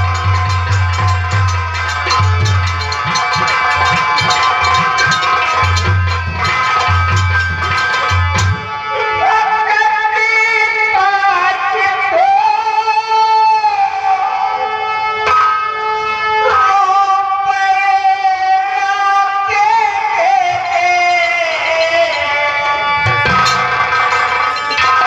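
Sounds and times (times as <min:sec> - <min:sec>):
drum beats: 0:00.0 - 0:09.0, 0:19.8 - 0:25.0
instrumental accompaniment: 0:00.0 - 0:10.2, 0:18.8 - 0:25.0
man singing through pa: 0:09.2 - 0:14.6, 0:16.5 - 0:23.6.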